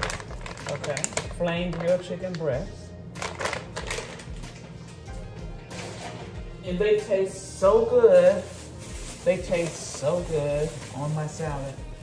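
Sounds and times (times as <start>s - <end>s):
plastic packaging crinkling: 0.0s - 2.5s, 3.2s - 4.5s, 7.9s - 12.0s.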